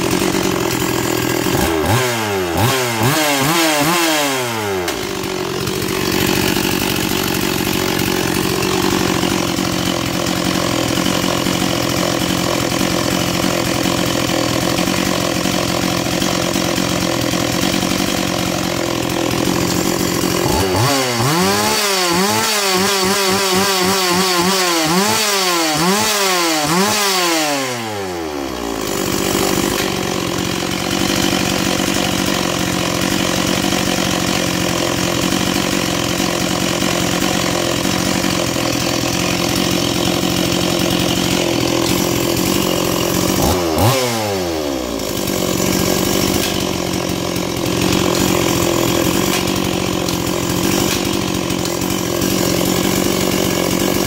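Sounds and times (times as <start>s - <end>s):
chainsaw revving and idling: 0.0s - 54.0s.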